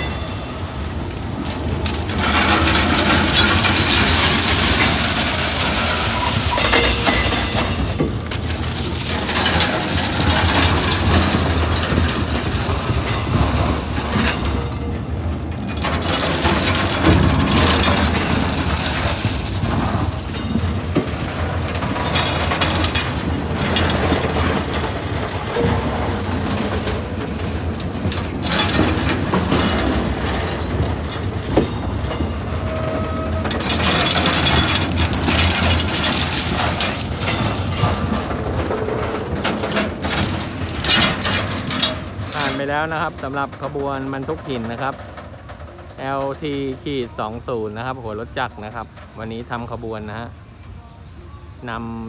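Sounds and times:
wagons rattling and clanking: 0.0 - 50.8
freight train wheels rumbling: 0.0 - 52.0.

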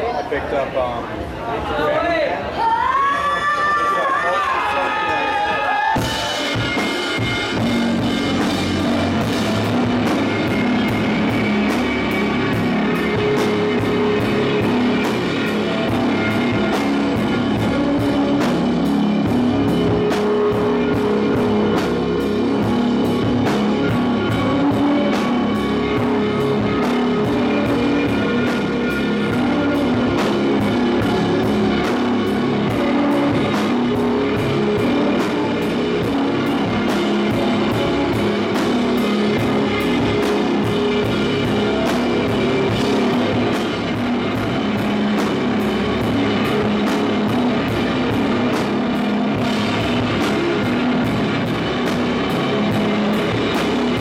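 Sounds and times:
electric guitars: 3.4 - 54.0
steady drumbeat: 4.9 - 54.0.

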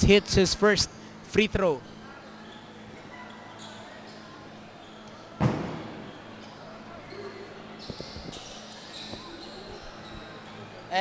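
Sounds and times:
faint crowd chatter: 0.0 - 11.0
basketball bouncing on court: 5.4 - 6.2.

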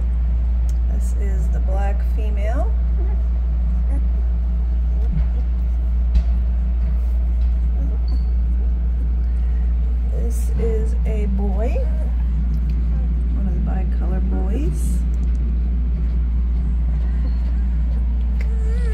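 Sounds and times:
steady low hum: 0.0 - 18.9
puppy whimpering: 2.8 - 6.1, 7.0 - 9.2, 11.5 - 13.1, 17.1 - 18.9.

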